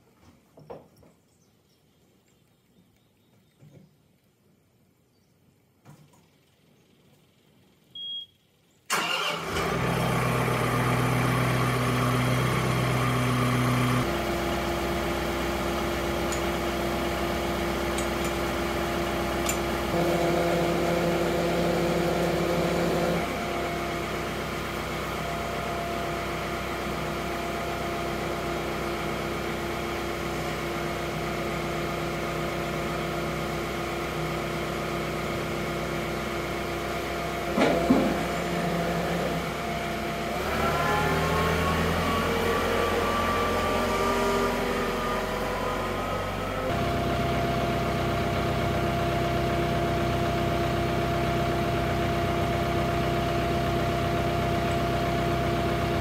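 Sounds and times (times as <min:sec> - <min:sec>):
tractor diesel engine running: 0:08.9 - 0:56.0.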